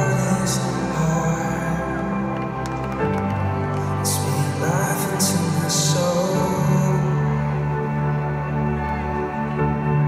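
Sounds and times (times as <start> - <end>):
arena crowd: 0.0 - 10.0
worship music keyboard chords: 0.0 - 10.0.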